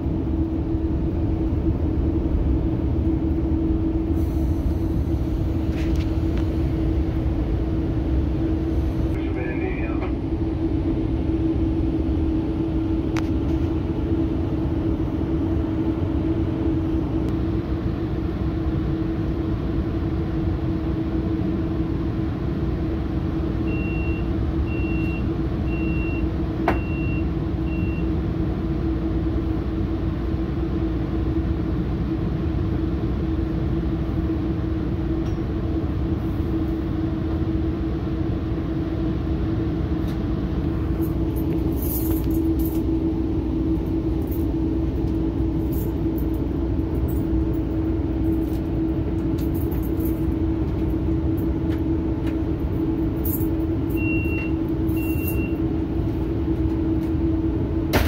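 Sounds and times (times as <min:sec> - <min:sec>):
constant hum: 0:00.0 - 0:58.0
train rumbling in motion: 0:00.0 - 0:58.0.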